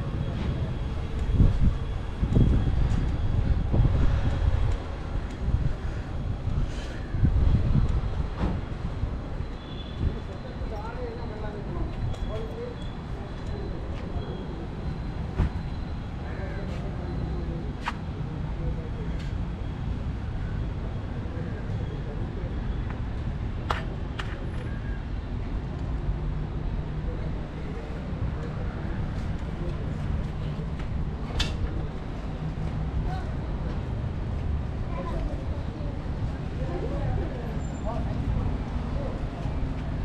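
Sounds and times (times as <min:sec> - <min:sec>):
faint people talking: 0:00.0 - 0:25.8, 0:26.4 - 0:40.0
low traffic rumble: 0:00.0 - 0:40.0
faint voices: 0:26.8 - 0:40.0.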